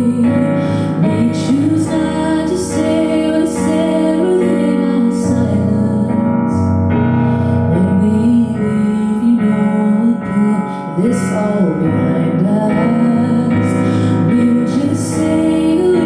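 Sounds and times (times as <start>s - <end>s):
piano chords: 0.0s - 16.0s
woman singing: 0.0s - 16.0s.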